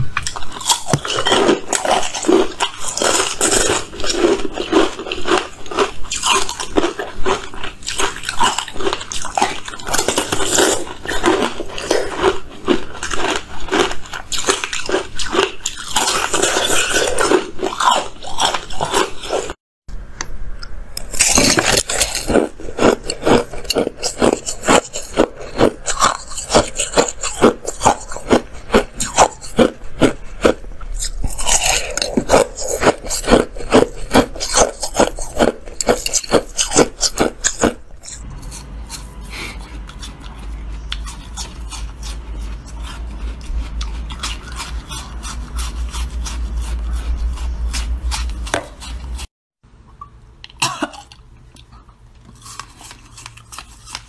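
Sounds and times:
crunching ice: 0:00.2 - 0:19.6, 0:21.0 - 0:38.3.

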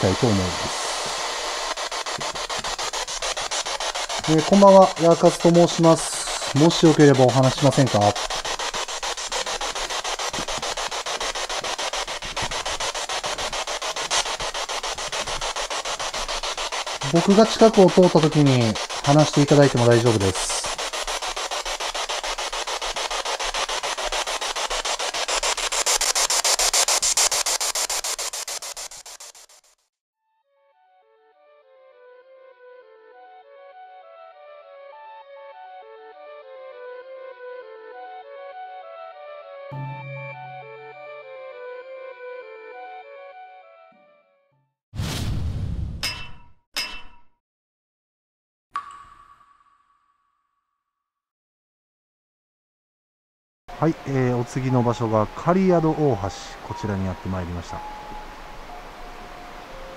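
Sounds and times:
radio static with rapid clicks: 0:00.0 - 0:29.8.

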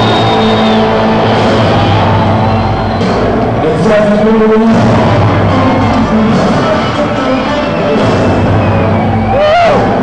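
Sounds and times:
loud electronic music: 0:00.0 - 0:10.0.

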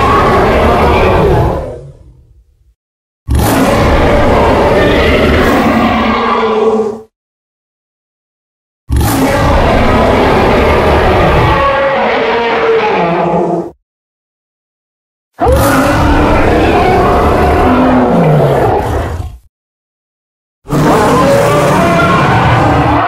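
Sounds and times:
dinosaur roar: 0:00.0 - 0:02.2, 0:03.3 - 0:07.1, 0:08.9 - 0:13.8, 0:15.4 - 0:19.5, 0:20.7 - 0:23.0.

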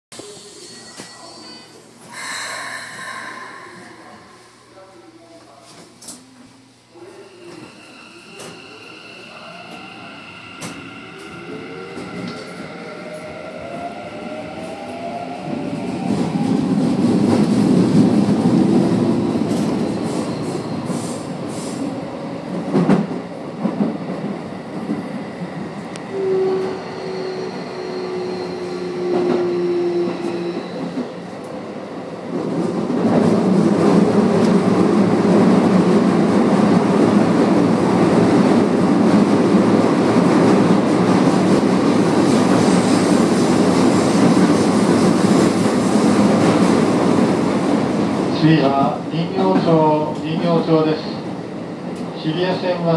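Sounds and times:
train wheels rumbling on rail: 0:09.6 - 0:52.2.

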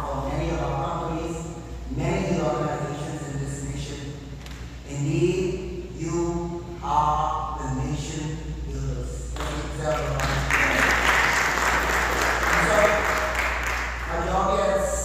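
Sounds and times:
man speaking: 0:00.0 - 0:04.2, 0:04.8 - 0:10.5, 0:12.5 - 0:13.3, 0:14.1 - 0:15.0
congregation applauding: 0:09.4 - 0:14.4.

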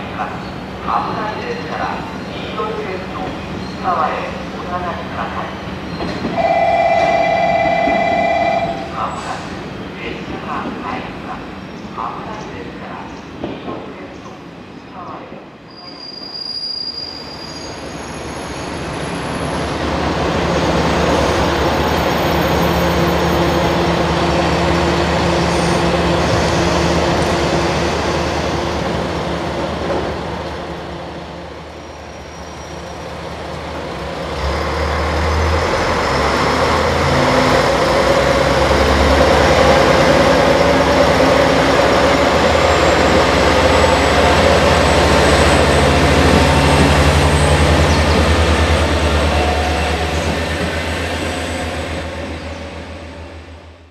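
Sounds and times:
diesel railcar engine: 0:17.9 - 0:53.9.

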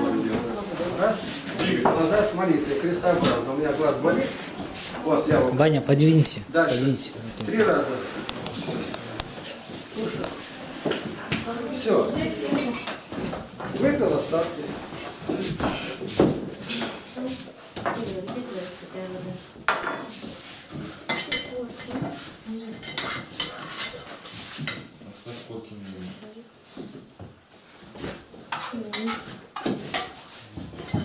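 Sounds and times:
shuffling footsteps on floor: 0:00.0 - 0:21.0, 0:24.2 - 0:28.5.

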